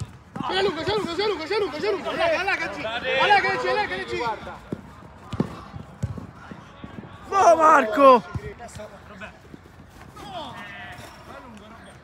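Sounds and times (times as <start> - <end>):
players running: 0.0 - 12.0
football being struck: 5.2 - 6.3.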